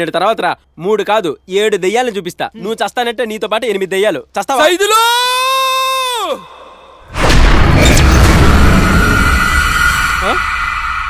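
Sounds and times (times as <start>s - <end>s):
person crying out high: 5.0s - 6.5s.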